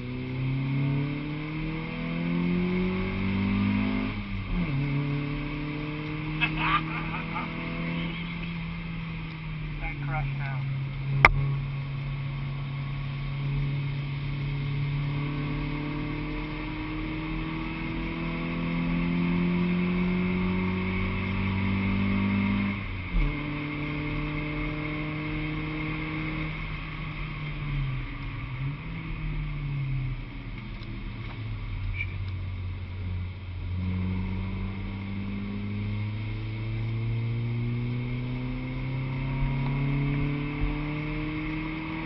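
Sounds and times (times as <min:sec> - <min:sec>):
car engine heard from cabin: 0:00.0 - 0:42.0.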